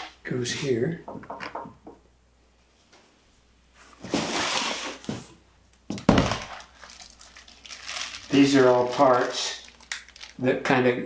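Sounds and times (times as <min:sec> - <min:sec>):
cardboard box rustling and scraping: 0:04.0 - 0:05.3.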